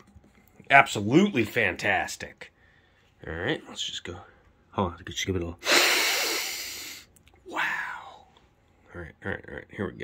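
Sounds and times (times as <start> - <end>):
man sniffing hard: 5.6 - 7.1.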